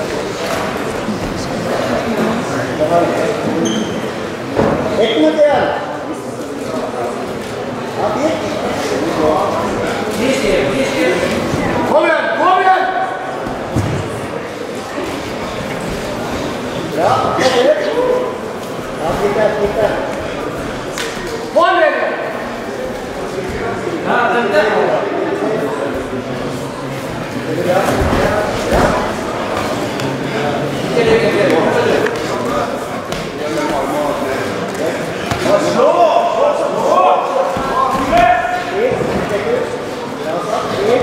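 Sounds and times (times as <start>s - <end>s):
voices calling out in a hall: 0.0s - 41.0s.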